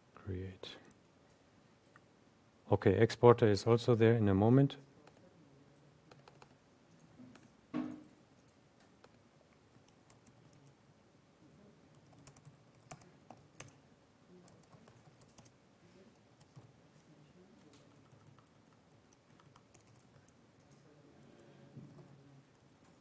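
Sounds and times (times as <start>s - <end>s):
typing on computer keyboard: 6.1s - 6.6s, 9.8s - 10.8s, 11.9s - 13.8s, 14.4s - 15.5s, 17.8s - 20.8s.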